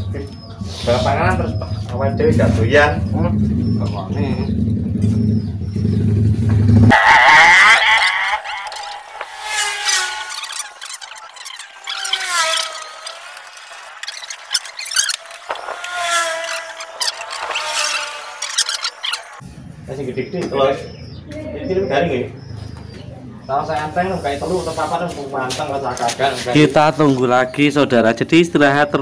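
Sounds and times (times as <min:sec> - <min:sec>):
plastic pipe squealing and scraping: 0:06.9 - 0:19.4.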